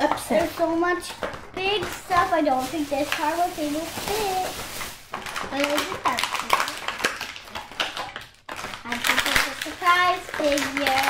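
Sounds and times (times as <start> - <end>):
plastic bag crinkling: 0.3 - 11.0.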